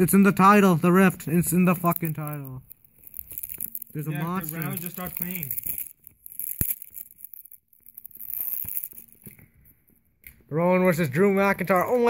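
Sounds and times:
rustling handling noises: 1.4s - 10.0s.

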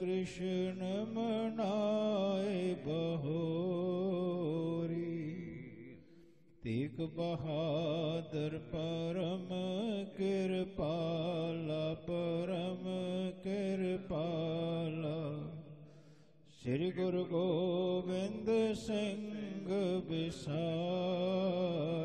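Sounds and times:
man chanting melodically: 0.0s - 5.9s, 6.6s - 15.7s, 16.5s - 22.0s.

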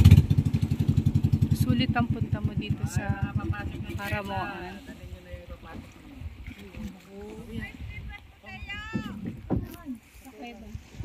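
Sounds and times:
low uneven rumble: 0.0s - 11.0s
people talking and calling out: 1.5s - 11.0s.

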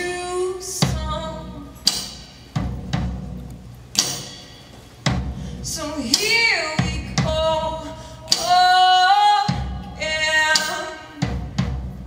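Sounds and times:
drum hits: 0.8s - 7.6s, 9.4s - 12.0s.

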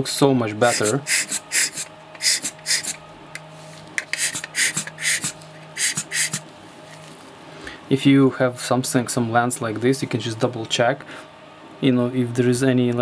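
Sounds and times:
hand air blower puffing: 0.6s - 3.0s, 4.0s - 6.4s.

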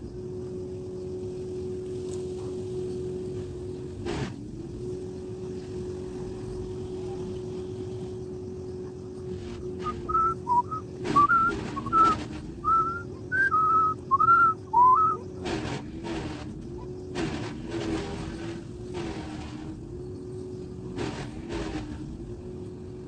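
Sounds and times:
steady low hum: 0.0s - 23.0s
rushing noise bursts: 9.6s - 16.6s
person whistling: 9.8s - 15.2s.

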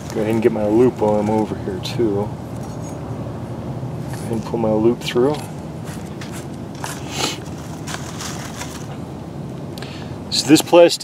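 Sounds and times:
steady low hum: 0.0s - 11.0s
dry leaves crackling: 5.4s - 9.1s.

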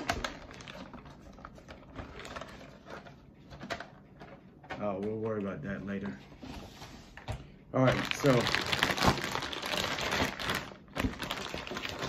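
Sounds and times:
packaging crinkling and rustling: 0.0s - 5.3s, 7.8s - 12.0s.

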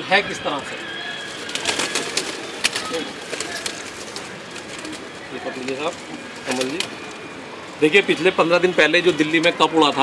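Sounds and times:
pigeons cooing: 0.6s - 10.0s
wings flapping: 1.1s - 7.4s.

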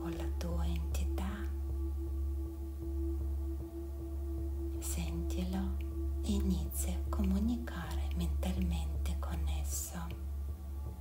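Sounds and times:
woman speaking softly: 0.0s - 1.6s, 4.8s - 10.2s
steady low hum: 0.0s - 11.0s.

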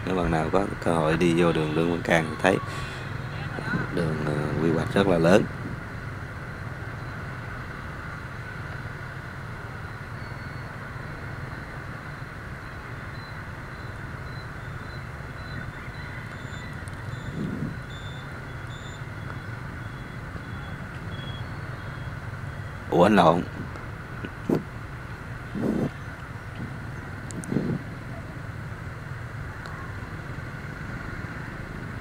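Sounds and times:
motorbike traffic hum: 0.0s - 32.0s.

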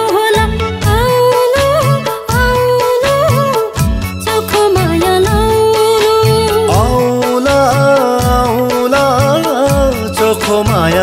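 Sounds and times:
pop song melody: 0.0s - 11.0s
drum beat: 4.7s - 11.0s.

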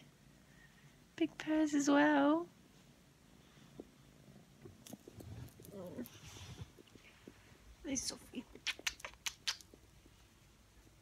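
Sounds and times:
cat purring: 3.5s - 11.0s.

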